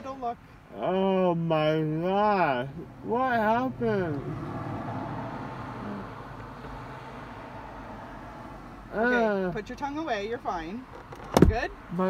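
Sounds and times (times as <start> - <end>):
car cabin hum and hiss: 0.0 - 12.0.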